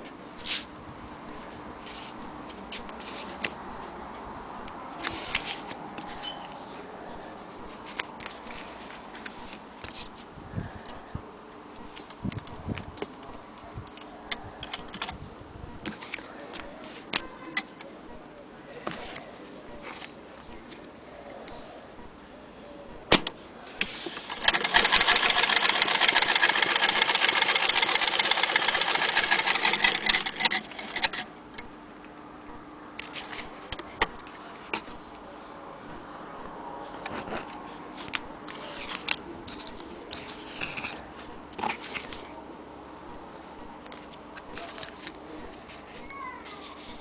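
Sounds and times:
sewing machine clattering: 0:24.3 - 0:31.3.

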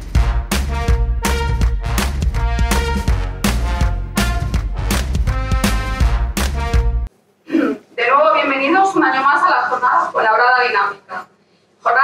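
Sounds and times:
woman speaking into a microphone: 0:08.0 - 0:12.0.

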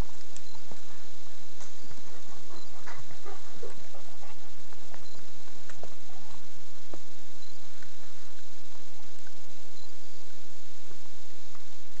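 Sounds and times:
footsteps on forest trail: 0:00.0 - 0:09.5.

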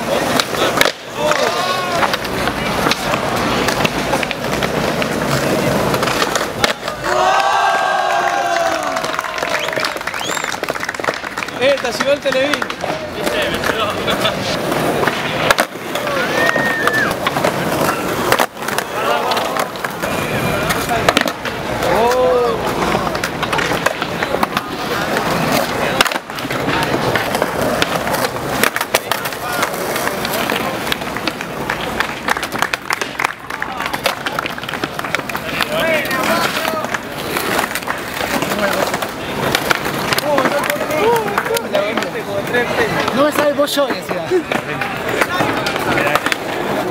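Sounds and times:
skateboard clack: 0:00.0 - 0:46.9
skateboard wheels rolling on concrete: 0:00.0 - 0:46.9
onlookers cheering: 0:06.8 - 0:11.1, 0:15.9 - 0:17.4.

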